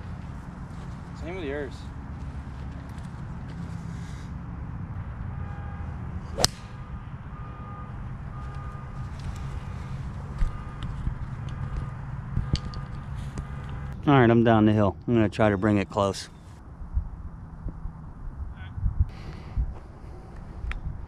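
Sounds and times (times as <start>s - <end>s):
golf club striking ball: 6.3s - 6.9s.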